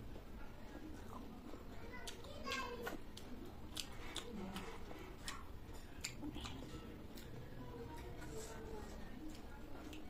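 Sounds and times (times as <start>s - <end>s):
chewing and lip-smacking: 0.7s - 10.0s
wet mouth clicks: 2.9s - 6.6s.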